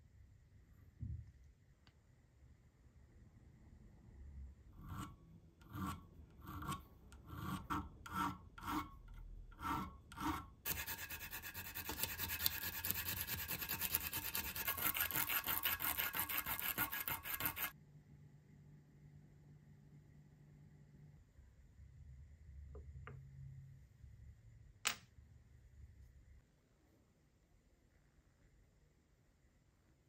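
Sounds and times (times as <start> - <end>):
sandpaper scraping metal: 10.7 - 17.7.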